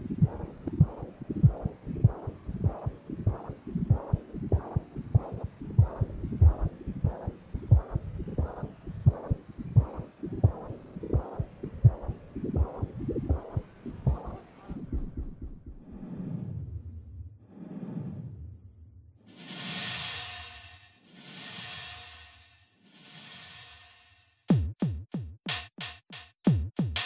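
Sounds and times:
electronic music with low thump: 0:00.0 - 0:16.0
steady hum: 0:00.0 - 0:17.9.

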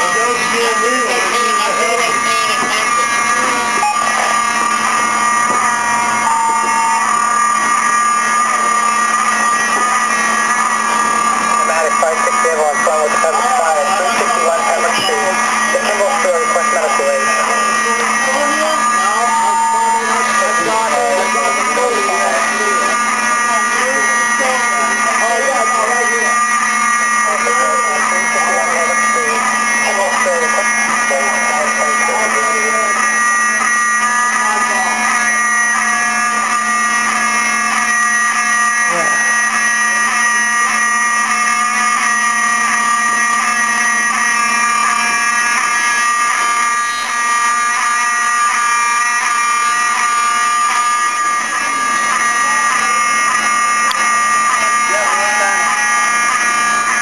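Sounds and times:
fire alarm buzzing: 0:00.0 - 0:57.0.

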